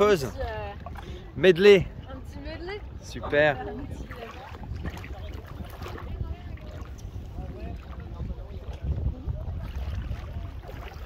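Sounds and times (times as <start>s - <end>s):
wind rumbling on microphone: 0.0s - 11.0s
faint distant voices: 0.1s - 11.0s.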